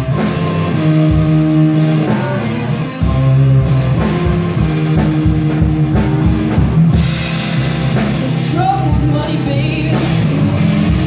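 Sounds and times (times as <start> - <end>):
drum beat: 0.0 - 11.0
electric bass line: 0.0 - 11.0
electric lead guitar: 0.0 - 11.0.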